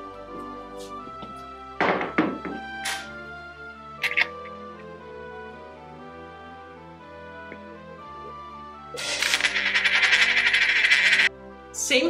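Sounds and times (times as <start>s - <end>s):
faint background music: 0.0s - 12.0s
coin rattling on tabletop: 9.0s - 11.3s.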